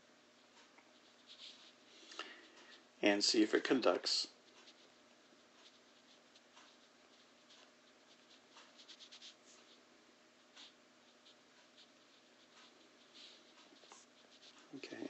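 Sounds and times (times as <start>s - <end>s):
stylus scratching on tablet: 0.3s - 2.7s, 3.6s - 15.0s.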